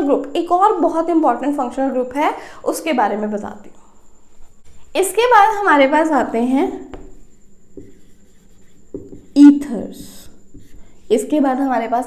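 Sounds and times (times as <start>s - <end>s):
marker writing on whiteboard: 6.8s - 11.4s.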